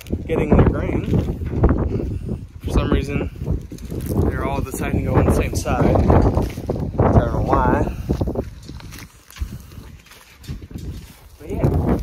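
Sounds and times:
cattle shuffling: 3.5s - 12.0s.

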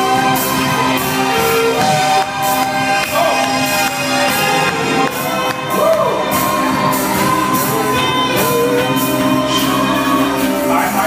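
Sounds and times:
gospel music: 0.0s - 11.0s
voices singing and shouting: 0.3s - 11.0s.

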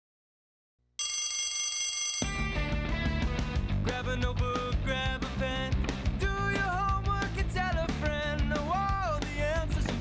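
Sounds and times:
electric school bell ringing: 1.0s - 2.5s.

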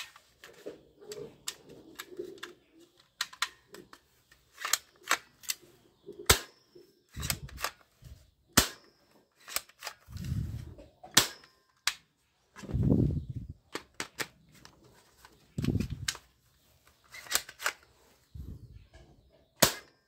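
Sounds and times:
plastic toy gun clicking: 0.0s - 5.6s, 6.2s - 7.9s, 8.6s - 10.2s, 11.1s - 12.1s, 13.7s - 14.7s, 17.0s - 17.9s.

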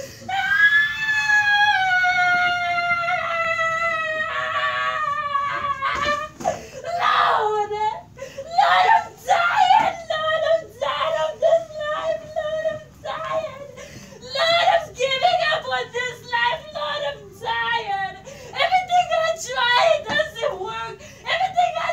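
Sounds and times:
woman wailing scream: 0.3s - 7.9s, 8.5s - 12.5s.

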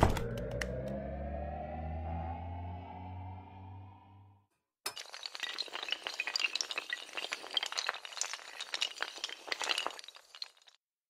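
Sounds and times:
dominoes toppling clatter: 5.0s - 10.8s.

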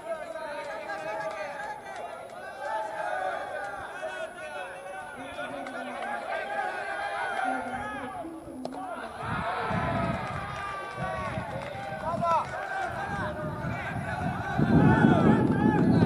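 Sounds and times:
crowd shouting and calling: 0.0s - 16.0s.

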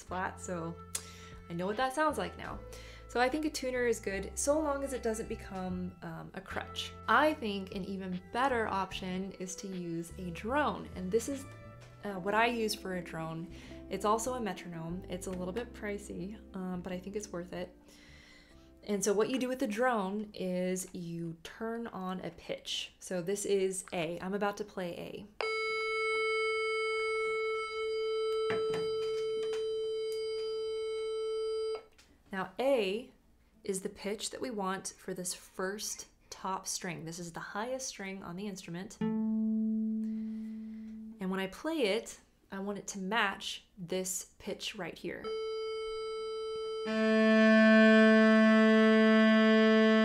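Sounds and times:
cello string bowed: 39.0s - 41.2s, 46.8s - 50.0s
electronic tuner drone: 39.0s - 41.2s, 45.3s - 50.0s.

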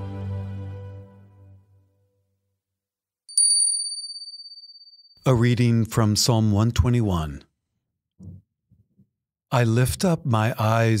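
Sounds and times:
small high-pitched bell ringing: 3.3s - 5.2s.

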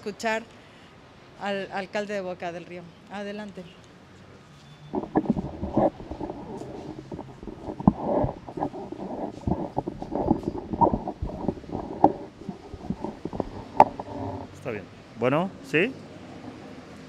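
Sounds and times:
microphone handling noise: 4.9s - 14.6s.

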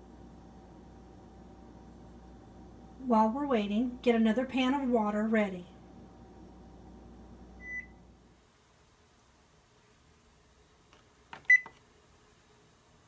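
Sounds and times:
oven control panel beeps: 7.6s - 8.0s, 11.5s - 11.7s.

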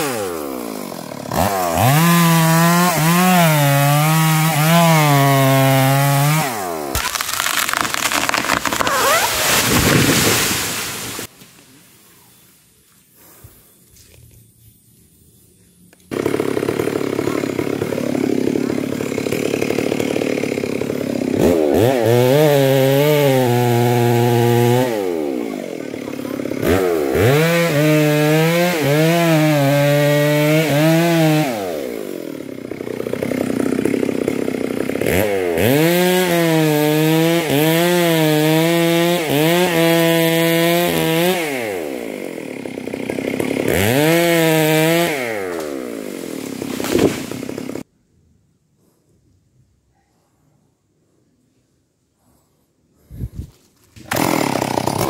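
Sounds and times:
chainsaw revving and idling: 0.0s - 11.3s, 16.1s - 47.9s, 54.0s - 55.0s.

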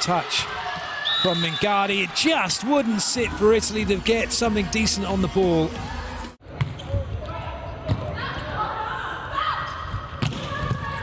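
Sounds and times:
players calling out: 0.0s - 6.3s.

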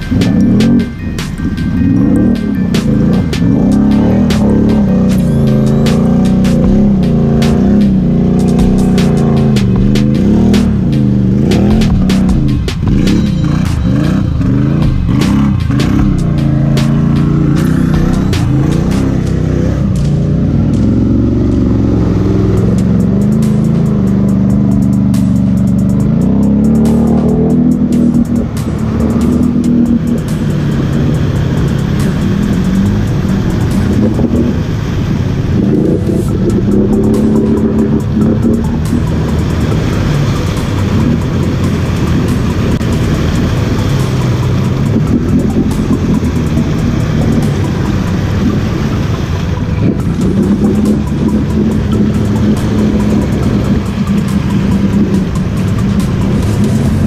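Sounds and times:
music track: 0.0s - 57.0s
quad engine revving: 0.0s - 57.0s.

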